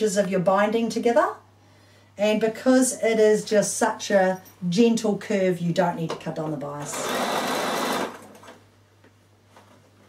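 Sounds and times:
sewing machine running: 6.8s - 8.5s.

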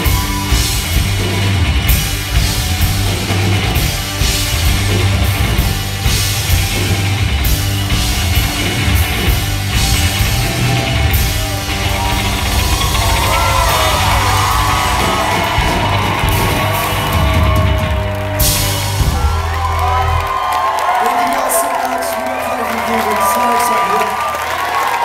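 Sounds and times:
crowd whooping and yelling: 0.0s - 25.0s
rock band playing live: 0.0s - 25.0s.

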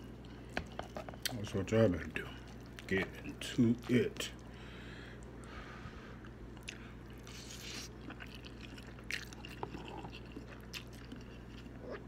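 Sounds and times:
man chewing noodles: 2.3s - 5.6s, 6.2s - 12.0s.

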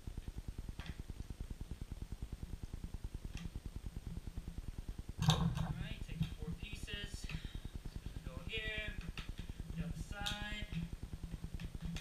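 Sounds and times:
plastic pipe clattering: 5.2s - 5.8s.

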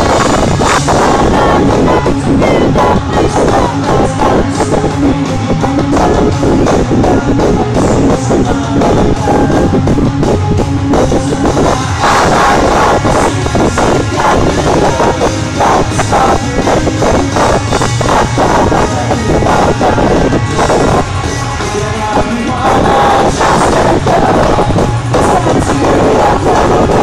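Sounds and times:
drum kit steady beat: 0.0s - 27.0s
electric guitars: 0.0s - 27.0s
live rock band playing: 0.0s - 27.0s.

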